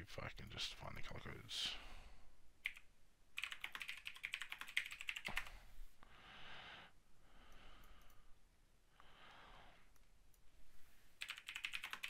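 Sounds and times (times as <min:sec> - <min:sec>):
typing on computer keyboard: 0:02.6 - 0:05.6, 0:11.2 - 0:12.0.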